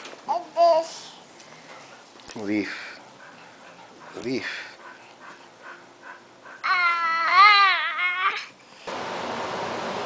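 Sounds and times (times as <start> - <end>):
room noise hiss: 0.0 - 10.0
toddler high-pitched vocal sound: 0.3 - 1.2, 6.6 - 8.6.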